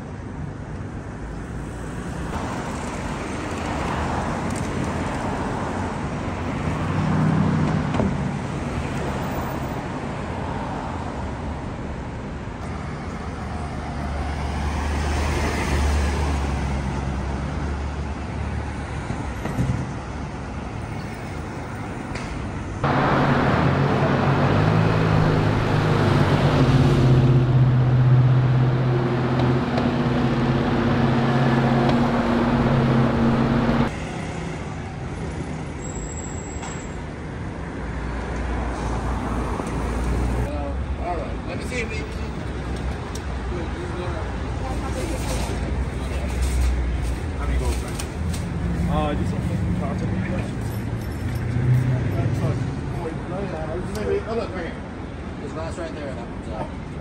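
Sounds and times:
vehicles passing: 0.0 - 57.0
vehicle engine humming steadily: 16.8 - 36.2.

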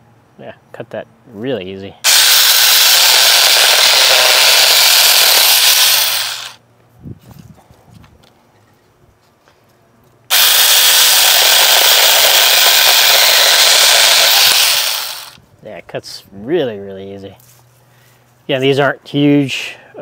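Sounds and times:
mini chainsaw cutting branch: 2.0 - 6.6, 10.3 - 15.4.

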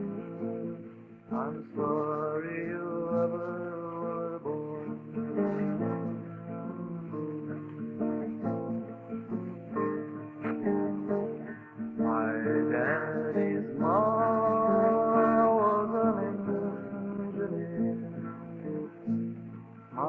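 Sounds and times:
man singing wordless held note: 0.0 - 8.6, 11.4 - 19.2
acoustic guitar folk ballad: 0.0 - 20.0.

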